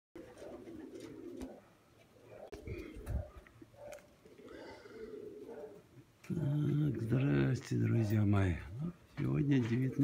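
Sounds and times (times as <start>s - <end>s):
pigeons cooing: 0.2s - 10.0s.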